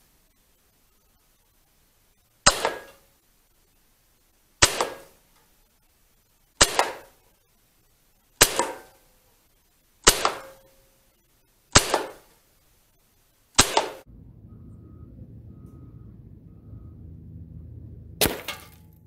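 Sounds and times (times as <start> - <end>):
low steady background noise: 0.0 - 19.0
air rifle firing: 2.5 - 3.0, 4.6 - 5.2, 6.6 - 7.2, 8.4 - 9.0, 10.0 - 10.6, 11.7 - 12.3, 13.6 - 14.1
pellet striking ice: 18.2 - 18.9.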